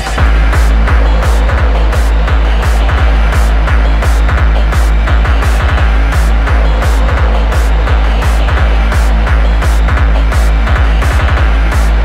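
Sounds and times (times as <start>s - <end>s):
deep continuous bass: 0.0s - 12.0s
fast kick drum: 0.0s - 12.0s
hi-hat bursts: 0.0s - 12.0s.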